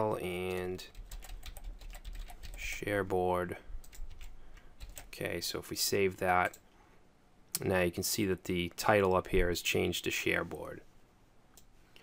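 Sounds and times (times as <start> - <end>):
computer keyboard typing: 0.5 - 2.6, 3.8 - 5.2.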